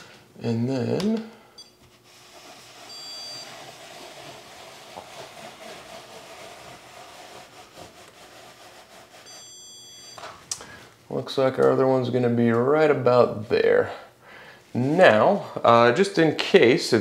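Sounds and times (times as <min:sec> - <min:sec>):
stud finder scraping drywall: 0:01.8 - 0:09.6.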